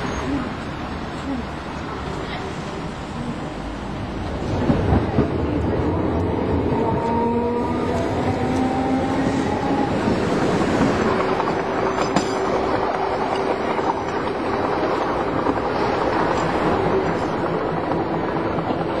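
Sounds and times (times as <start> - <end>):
tram rumbling on rails: 0.0 - 19.0
tram knocks: 4.2 - 19.0.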